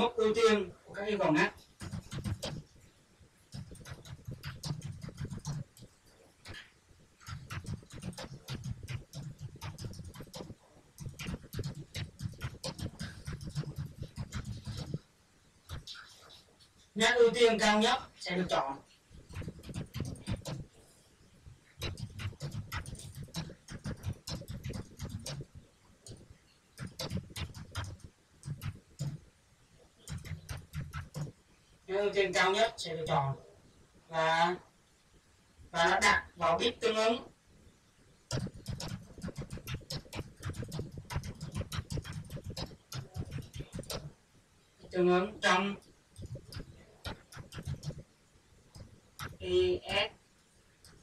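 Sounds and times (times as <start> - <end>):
computer keyboard typing: 1.6 - 2.7, 3.5 - 15.0, 15.7 - 16.4, 19.2 - 20.7, 21.8 - 26.2, 26.8 - 29.2, 30.0 - 31.3, 38.3 - 44.1, 45.8 - 48.0, 48.8 - 49.4.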